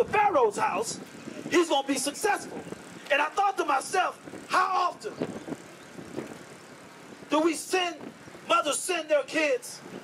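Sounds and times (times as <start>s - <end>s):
amplified speech: 0.0s - 5.2s, 7.3s - 9.8s
outdoor background noise: 0.0s - 10.0s.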